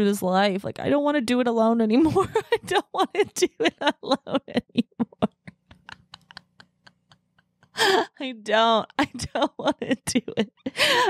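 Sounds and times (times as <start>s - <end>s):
woman laughing: 2.0s - 11.0s
loud gasping breath: 10.7s - 11.0s.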